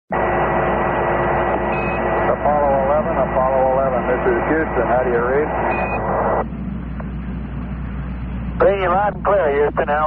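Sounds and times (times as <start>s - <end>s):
radio static hiss and whine: 0.1s - 10.0s
voice over radio: 2.3s - 6.4s, 8.6s - 10.0s.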